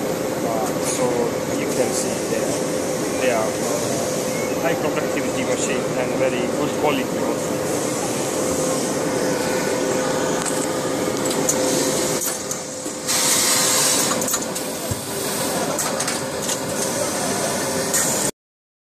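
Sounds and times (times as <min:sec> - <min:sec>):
machine humming: 0:00.0 - 0:18.3.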